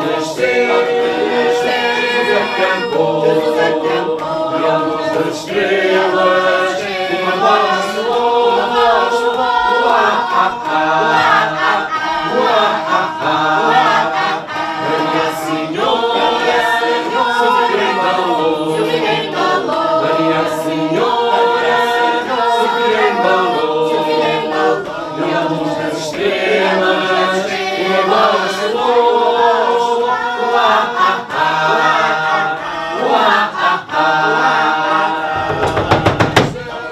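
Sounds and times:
group singing together: 0.0 - 36.9
sharp percussive taps: 35.2 - 36.9.

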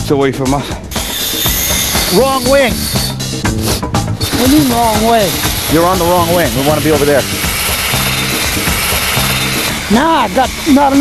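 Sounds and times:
background music: 0.0 - 11.0
low bass notes: 1.9 - 11.0.

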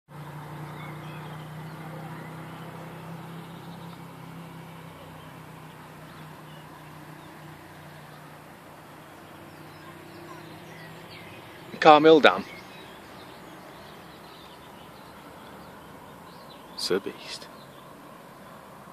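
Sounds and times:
low engine hum: 0.1 - 18.9
faint bird chirps: 0.6 - 8.4, 9.0 - 18.6.

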